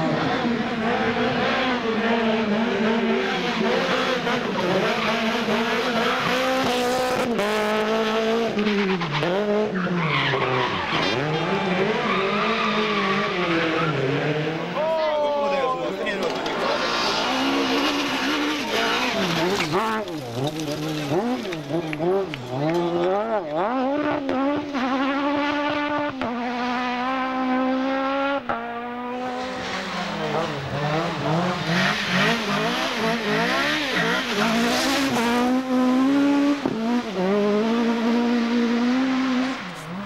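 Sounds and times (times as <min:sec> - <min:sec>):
car engine revving: 0:00.0 - 0:14.9, 0:15.8 - 0:40.0.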